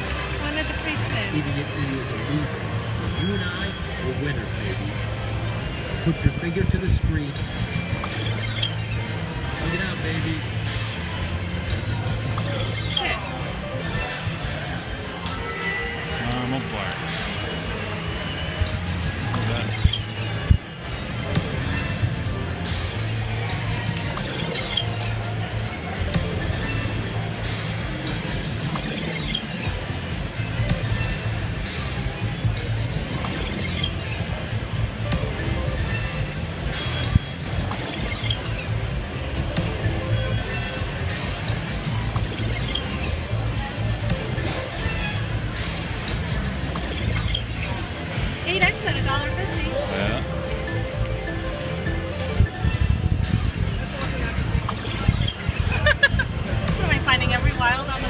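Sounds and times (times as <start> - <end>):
slot machine music: 0.0 - 58.0.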